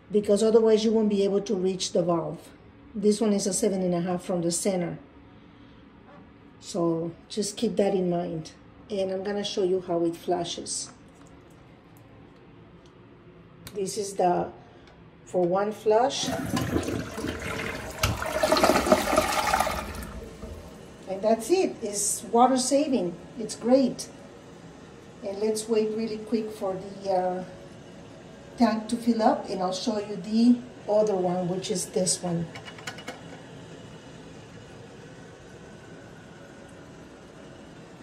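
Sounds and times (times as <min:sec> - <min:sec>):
toilet flushing: 0:16.1 - 0:21.1.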